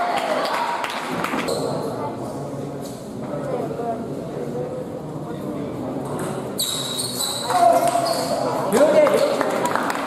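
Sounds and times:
spectators chattering in a hall: 0.0s - 10.0s.

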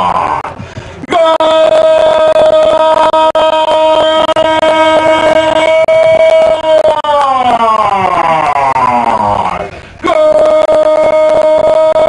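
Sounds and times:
commentator shouting goal: 0.0s - 12.0s.

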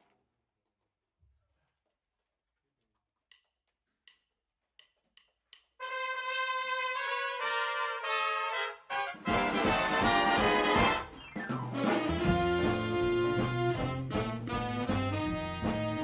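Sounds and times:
big band playing: 5.8s - 16.0s
brass section chords: 5.8s - 16.0s.

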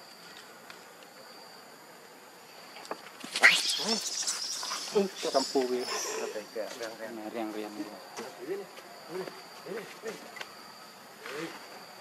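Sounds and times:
macaque calling: 3.3s - 6.5s.

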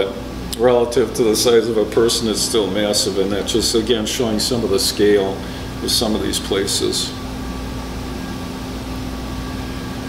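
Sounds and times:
room hum and hiss: 0.0s - 10.0s.

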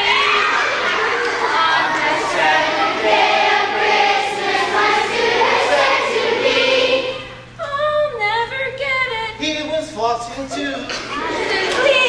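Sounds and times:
group of voices singing: 0.8s - 7.5s, 10.9s - 12.0s.

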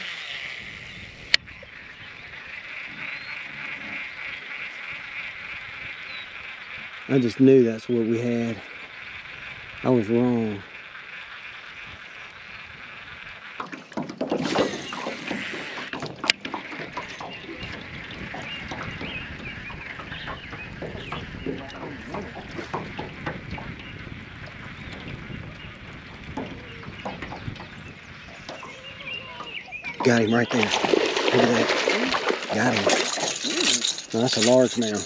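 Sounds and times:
fishing reel spool whir: 0.0s - 35.0s
reel cranking with rapid clicks: 0.0s - 35.0s.

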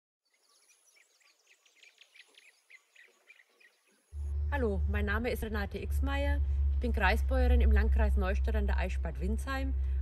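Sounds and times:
faint birds chirping: 0.2s - 5.4s.

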